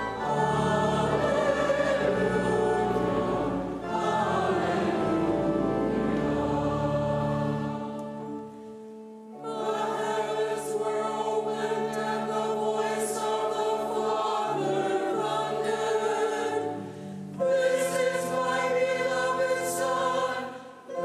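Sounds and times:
church choir singing: 0:00.0 - 0:21.0
held accompanying chords: 0:00.0 - 0:21.0
breath: 0:20.5 - 0:20.8.

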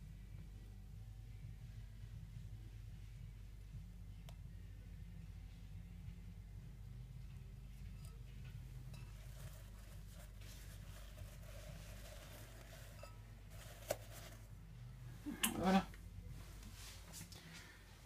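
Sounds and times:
low room hum: 0:00.0 - 0:18.0.

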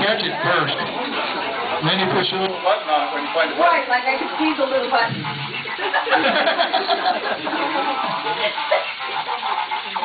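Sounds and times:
people laughing: 0:00.0 - 0:03.4, 0:04.2 - 0:10.0
people talking: 0:00.0 - 0:10.0.

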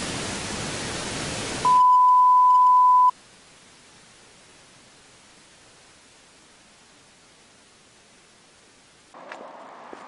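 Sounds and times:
loud static hiss: 0:00.0 - 0:09.2
steady electronic beep: 0:01.7 - 0:03.1.

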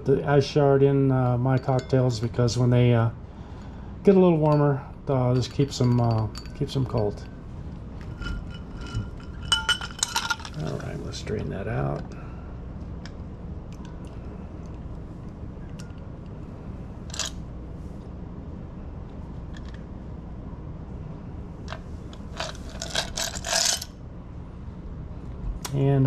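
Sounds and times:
low steady hum: 0:00.0 - 0:26.0
glass and metal clinks: 0:01.6 - 0:02.3, 0:05.2 - 0:07.3, 0:08.1 - 0:10.8.

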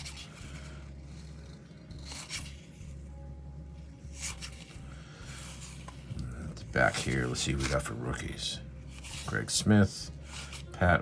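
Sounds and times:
low steady hum: 0:00.0 - 0:11.0
trading cards scraping rustles: 0:00.0 - 0:11.0.

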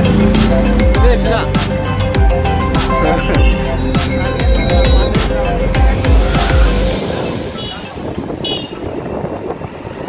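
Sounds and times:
music with heavy bass beat: 0:00.0 - 0:08.1
street traffic noise: 0:00.0 - 0:10.0.

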